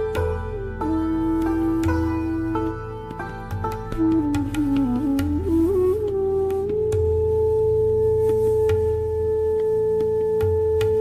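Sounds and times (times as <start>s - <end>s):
bamboo flute long note: 0.0s - 11.0s.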